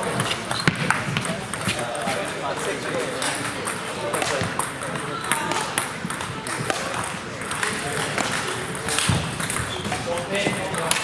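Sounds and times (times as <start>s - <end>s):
table tennis balls clicking: 0.0s - 11.0s.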